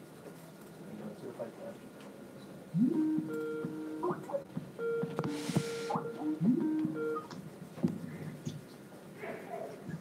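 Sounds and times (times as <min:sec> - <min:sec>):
electronic ringing tone melody: 0:02.8 - 0:04.1, 0:04.8 - 0:07.3.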